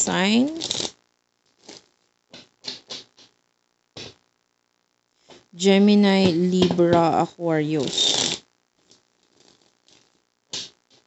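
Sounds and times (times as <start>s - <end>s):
cards being shuffled: 0.4s - 0.9s, 1.5s - 3.3s, 7.8s - 11.0s.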